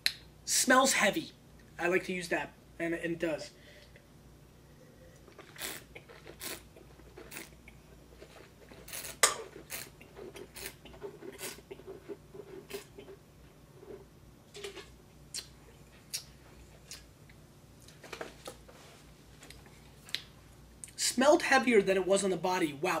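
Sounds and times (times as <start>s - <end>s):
faint room hum: 0.0s - 23.0s
wet mouth smacks and clicks: 15.3s - 16.3s, 16.9s - 17.1s.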